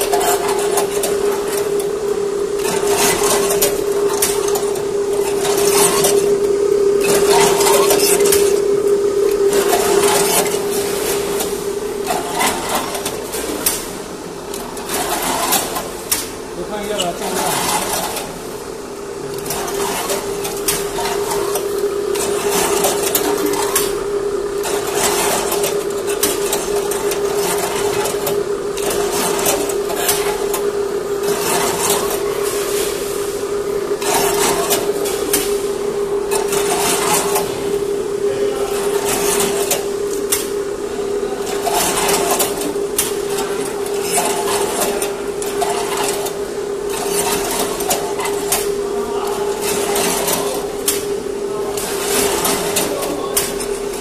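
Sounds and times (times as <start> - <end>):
machine hum: 0.0 - 54.0.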